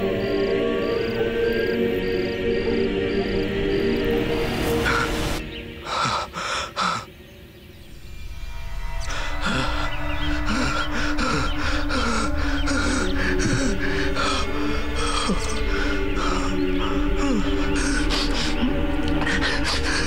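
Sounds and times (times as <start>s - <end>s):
tense music with pulsing beat: 7.7s - 20.0s.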